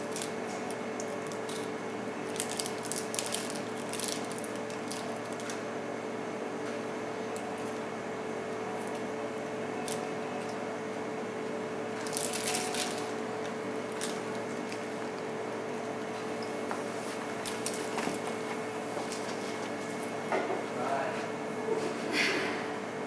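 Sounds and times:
room hum: 0:00.0 - 0:23.0
wrapper crinkling: 0:02.3 - 0:05.6, 0:12.0 - 0:13.1, 0:13.9 - 0:14.9.

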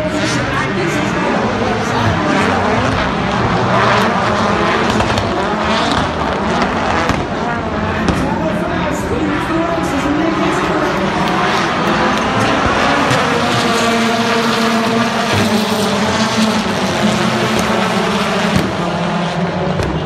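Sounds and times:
race car engines revving: 0:00.0 - 0:20.0.

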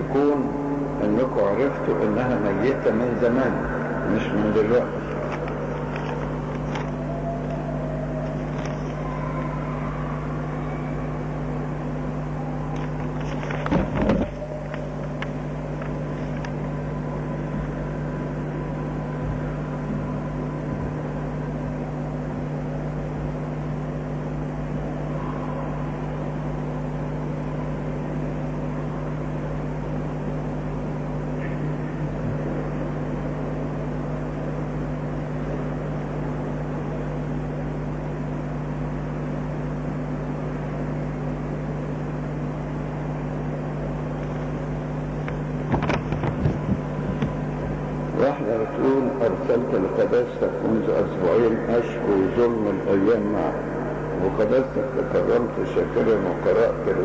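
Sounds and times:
low hum and hiss: 0:00.0 - 0:57.0.

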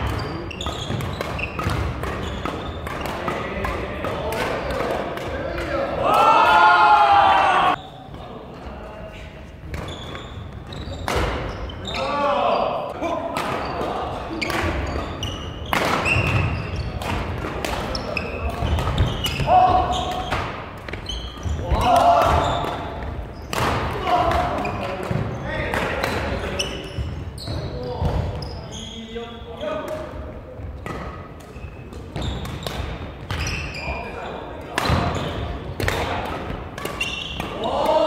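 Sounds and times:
racket hitting shuttlecock: 0:00.0 - 0:05.7, 0:14.4 - 0:26.3, 0:34.7 - 0:38.0
players shouting: 0:05.7 - 0:07.8, 0:37.5 - 0:38.0.

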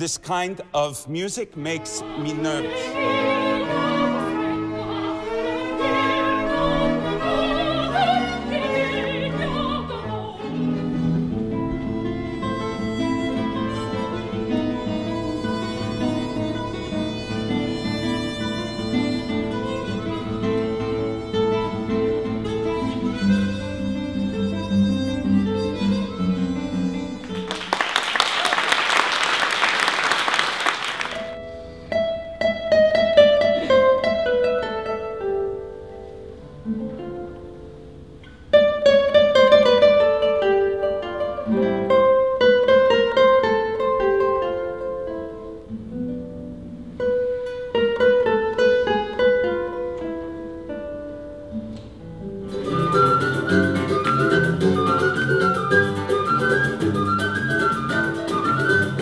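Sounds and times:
classical guitar melody: 0:01.6 - 0:27.7, 0:31.0 - 0:59.0
flute and guitars ensemble: 0:01.7 - 0:27.8, 0:30.9 - 0:59.0
applause: 0:27.2 - 0:31.4.

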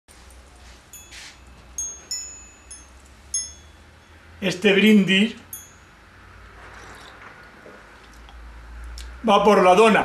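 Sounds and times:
low steady hum: 0:00.1 - 0:07.2.

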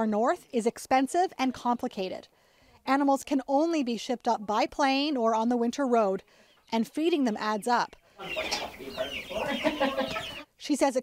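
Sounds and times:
chickens clucking: 0:06.4 - 0:10.6.

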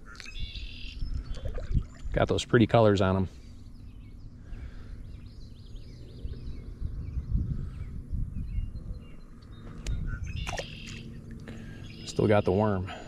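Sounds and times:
small birds chirping: 0:00.0 - 0:13.0.

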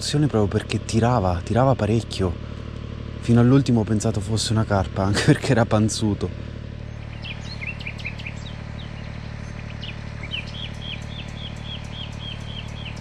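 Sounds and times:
low background rumble: 0:00.0 - 0:13.0
small bird chirping: 0:06.8 - 0:13.0.

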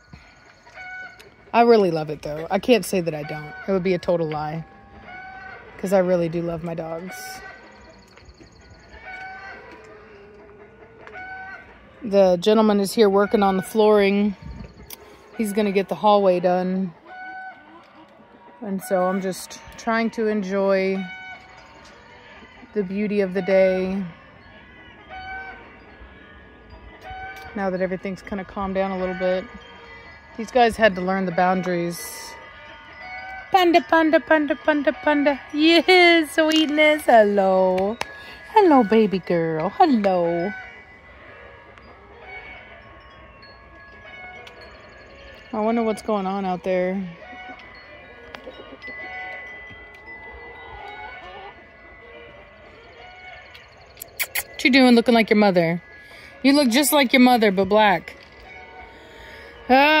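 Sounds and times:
wind chimes ringing: 0:00.0 - 1:00.0
high-pitched animal call: 0:52.8 - 0:54.6.

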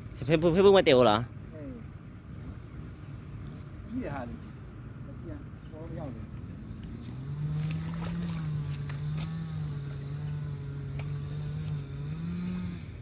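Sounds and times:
fishing reel whirring: 0:07.1 - 0:13.0.

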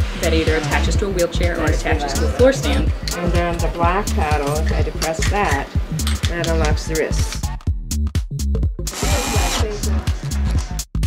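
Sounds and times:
electronic dance music: 0:08.8 - 0:10.8.

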